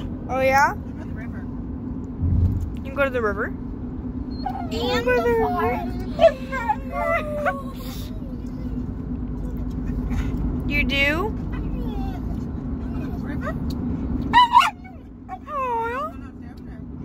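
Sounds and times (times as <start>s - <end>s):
car driving drone: 0.0s - 17.0s
dog whining and howling: 4.3s - 8.8s, 11.6s - 13.2s, 14.3s - 16.1s.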